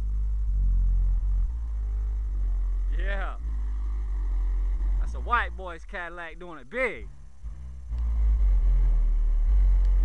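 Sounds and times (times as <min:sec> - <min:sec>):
subwoofer deep bass: 0:00.0 - 0:10.0
person speaking: 0:02.9 - 0:03.5, 0:05.0 - 0:07.2.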